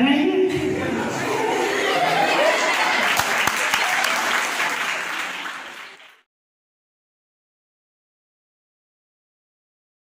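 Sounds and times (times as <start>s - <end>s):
audience applauding: 1.4s - 6.3s.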